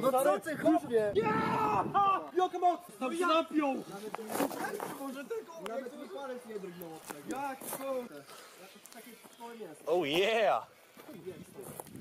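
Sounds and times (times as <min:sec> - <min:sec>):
men talking: 0:00.0 - 0:11.9.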